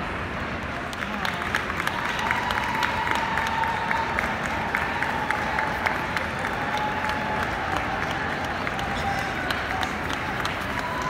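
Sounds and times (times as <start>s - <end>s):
crowd murmur: 0.0s - 11.0s
spectators clapping: 0.4s - 11.0s.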